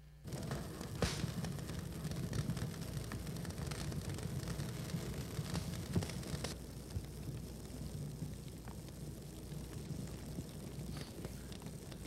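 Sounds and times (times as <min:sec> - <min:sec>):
faint crackles: 0:00.0 - 0:12.0
low rumble and hiss: 0:00.0 - 0:12.0.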